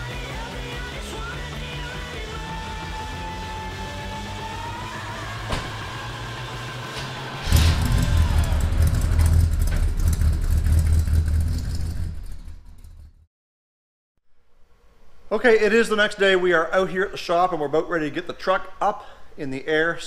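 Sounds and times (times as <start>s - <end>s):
background music: 0.0s - 8.9s
pickup engine starting and rumbling: 5.1s - 13.2s.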